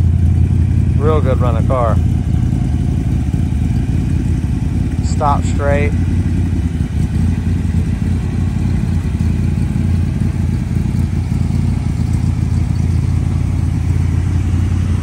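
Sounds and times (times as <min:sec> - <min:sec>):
car engine idling: 0:00.0 - 0:15.0.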